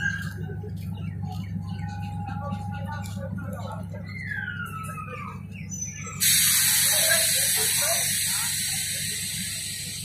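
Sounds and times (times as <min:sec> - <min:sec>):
train diesel engine humming: 0:00.0 - 0:10.0
air hissing: 0:06.2 - 0:10.0.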